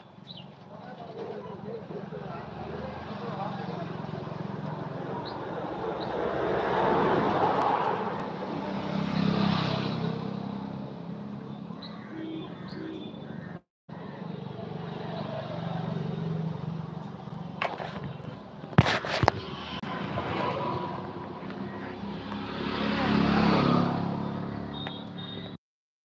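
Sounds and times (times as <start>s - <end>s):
vehicle engine passing: 1.9s - 11.4s, 19.2s - 24.7s.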